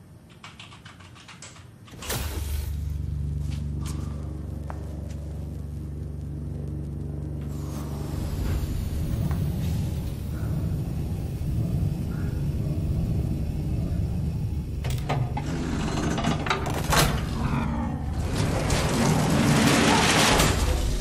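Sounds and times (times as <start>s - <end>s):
low mechanical hum: 0.0s - 21.0s.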